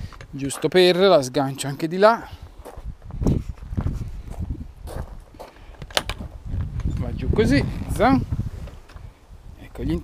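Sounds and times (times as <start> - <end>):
footsteps: 0.1 - 6.8.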